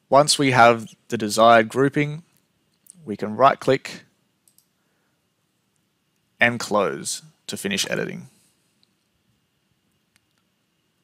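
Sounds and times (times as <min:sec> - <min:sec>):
computer mouse clicks: 0:04.4 - 0:04.8.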